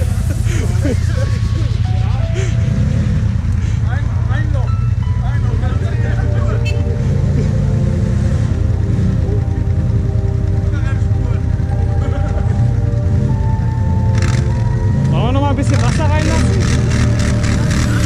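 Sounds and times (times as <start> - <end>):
people's voices: 0.0 - 13.3, 15.0 - 18.0
music: 0.0 - 18.0
quad bike engine running: 0.0 - 18.0.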